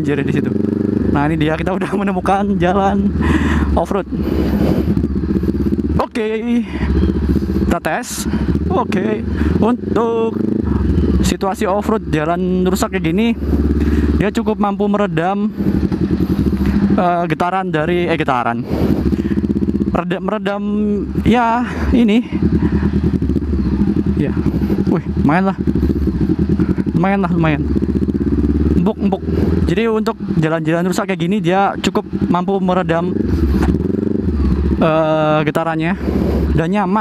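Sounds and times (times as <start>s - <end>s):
motorcycle engine running: 0.0s - 37.0s
road and wind noise: 0.0s - 37.0s.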